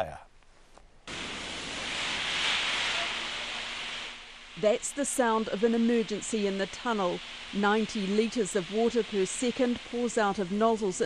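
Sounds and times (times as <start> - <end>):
water spraying with rushing hiss: 1.1 - 11.0.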